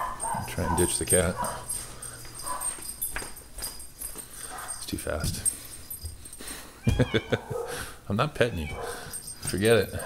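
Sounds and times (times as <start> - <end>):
pet crying: 6.8 - 7.8, 8.4 - 9.2.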